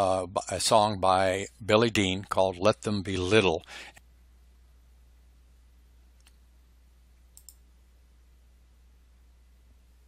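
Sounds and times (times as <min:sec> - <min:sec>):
faint low hum: 0:00.0 - 0:10.0
computer mouse clicks: 0:07.3 - 0:07.6.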